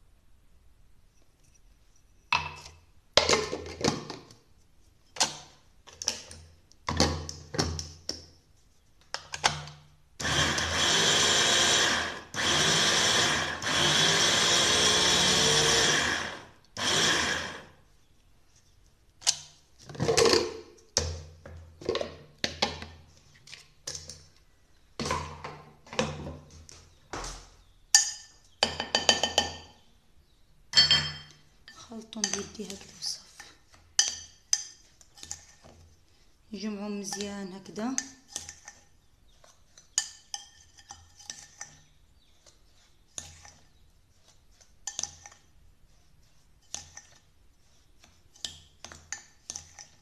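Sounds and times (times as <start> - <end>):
glass bowl and lid clinking: 30.8 - 31.3.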